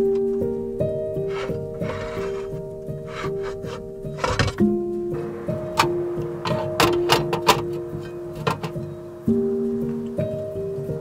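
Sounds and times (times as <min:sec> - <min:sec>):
background music of held notes: 0:00.0 - 0:11.0
metal stove parts knocking: 0:01.3 - 0:04.7, 0:05.7 - 0:08.9.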